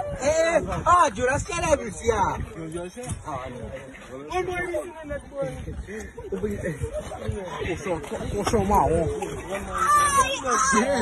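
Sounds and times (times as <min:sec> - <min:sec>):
boys shouting: 0:09.6 - 0:11.0.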